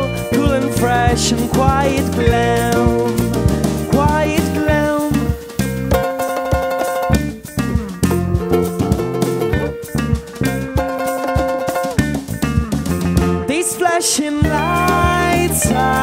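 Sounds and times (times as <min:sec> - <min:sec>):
drum kit beat: 0:00.0 - 0:16.0
electric guitars: 0:00.0 - 0:16.0.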